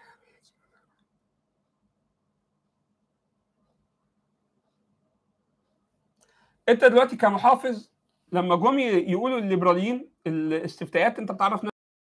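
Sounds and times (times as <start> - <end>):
soft whisper-like sound: 0.0 - 1.2
faint low hum: 0.0 - 11.6.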